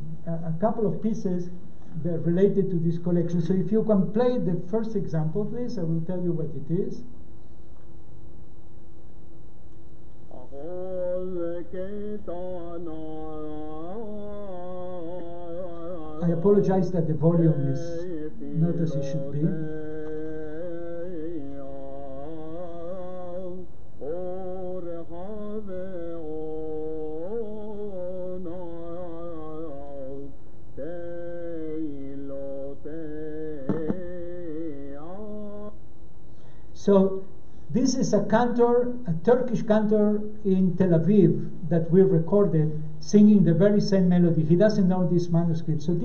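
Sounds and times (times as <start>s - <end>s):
man singing over sound system: 10.3s - 35.7s
short knocks: 33.7s - 34.0s.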